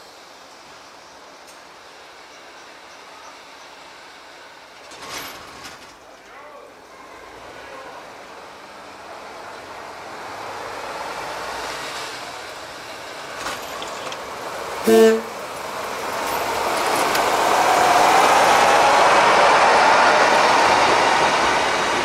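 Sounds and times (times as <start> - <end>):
diesel railcar engine and running: 0.0 - 22.0.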